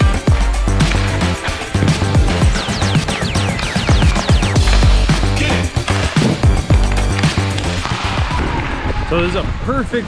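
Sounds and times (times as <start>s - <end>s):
music with heavy bass beat: 0.0s - 8.2s.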